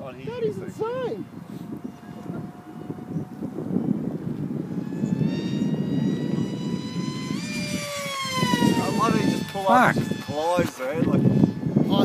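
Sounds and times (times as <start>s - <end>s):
wind rumble on microphone: 0.0s - 12.0s
model jet motor whining past: 0.2s - 12.0s.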